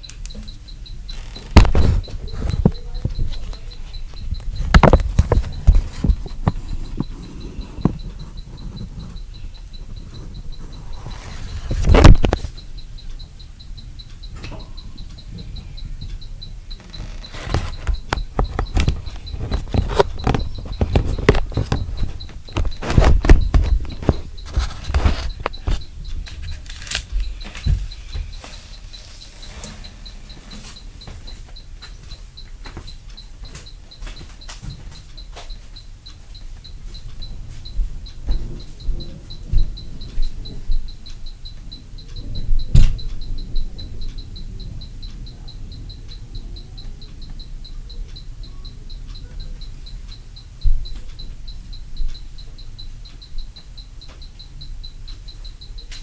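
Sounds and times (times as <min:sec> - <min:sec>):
dull thumps and knocks: 0:17.1 - 0:25.8.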